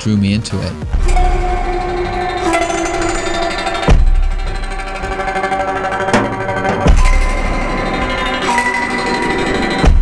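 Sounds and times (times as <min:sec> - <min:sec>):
held synth tone: 0:01.0 - 0:09.7.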